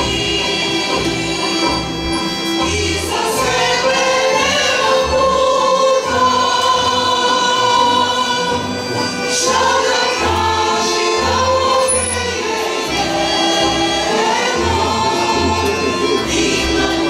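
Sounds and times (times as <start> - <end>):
women's choir singing: 0.0 - 17.0.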